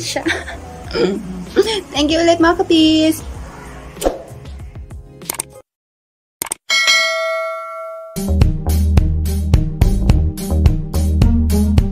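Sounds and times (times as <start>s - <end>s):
quick clicks: 5.2s - 5.6s, 6.4s - 6.6s
notification bell ding: 6.7s - 8.3s.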